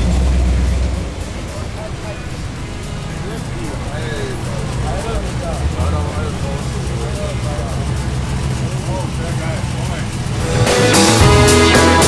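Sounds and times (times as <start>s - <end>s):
truck engine at low revs: 0.0s - 12.0s
people talking: 0.9s - 12.0s.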